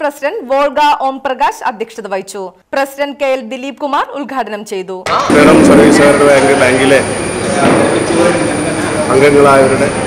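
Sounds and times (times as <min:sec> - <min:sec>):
crowd chatter in a hall: 0:05.1 - 0:10.0
high-pitched whine: 0:05.1 - 0:10.0.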